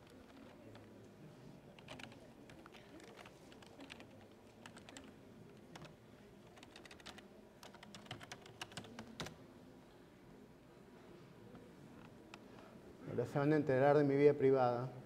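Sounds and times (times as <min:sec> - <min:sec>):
faint keyboard typing: 0:00.0 - 0:09.4.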